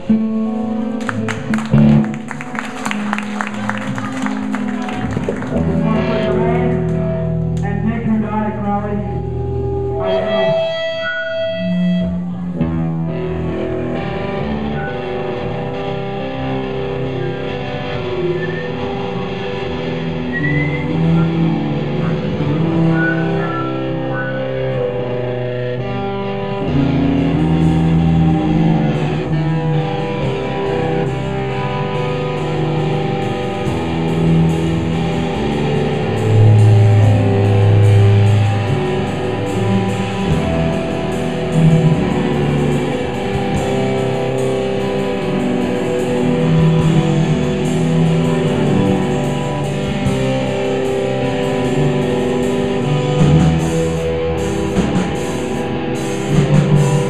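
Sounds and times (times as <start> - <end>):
electric guitar riffs: 0.0 - 57.0
cymbals and drums: 30.4 - 57.0.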